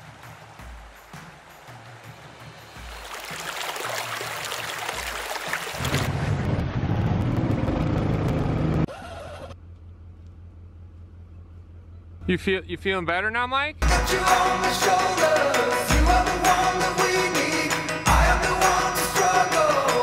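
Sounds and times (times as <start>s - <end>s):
water rushing from pipe: 2.9s - 6.1s
background music with bass: 11.8s - 20.0s.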